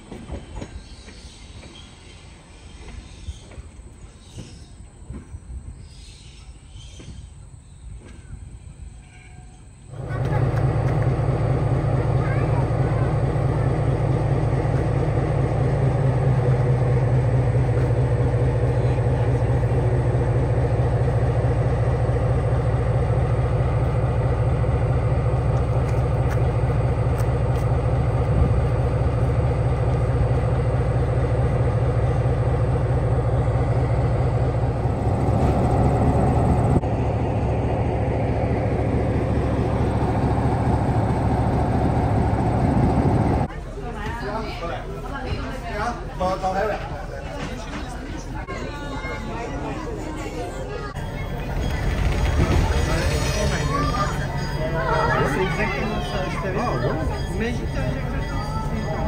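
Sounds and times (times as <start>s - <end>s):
diesel locomotive engine running: 9.6s - 59.0s.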